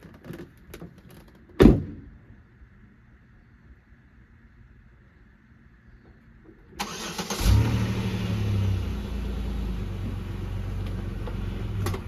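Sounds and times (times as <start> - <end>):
car engine starting and idling: 6.6 - 12.0.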